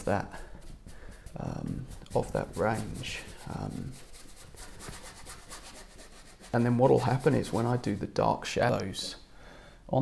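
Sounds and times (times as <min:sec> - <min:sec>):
paintbrush scrubbing on canvas: 0:00.0 - 0:08.3.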